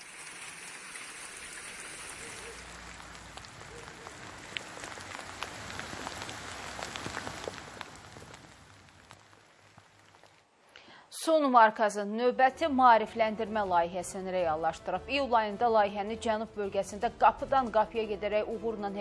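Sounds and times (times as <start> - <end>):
rain hissing: 0.0 - 10.7
hailstones ticking: 2.2 - 10.4.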